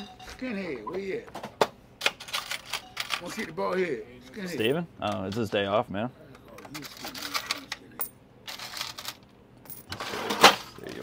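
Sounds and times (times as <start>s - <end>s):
coins clinking: 2.0s - 3.5s, 6.6s - 11.0s
paper bills rustling: 6.7s - 7.7s.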